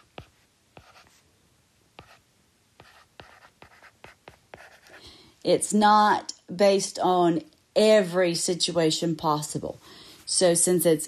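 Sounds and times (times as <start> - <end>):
stylus writing on tablet screen: 0.0 - 1.2, 2.0 - 2.2, 2.8 - 5.0.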